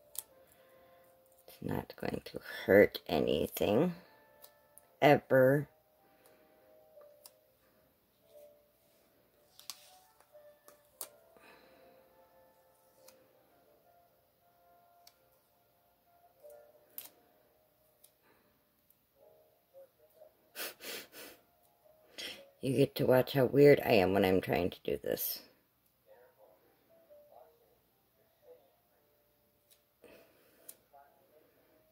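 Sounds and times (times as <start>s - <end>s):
faint background music: 0.0s - 31.9s
paper rustling: 9.4s - 11.1s.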